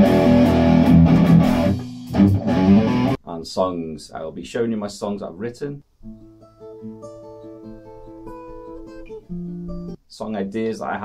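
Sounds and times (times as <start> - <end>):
fingerstyle acoustic guitar: 6.0 - 10.0.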